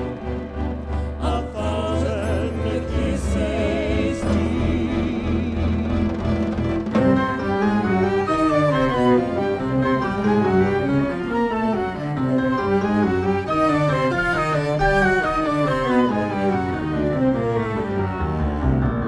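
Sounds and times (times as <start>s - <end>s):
bowed string music: 0.0s - 19.0s.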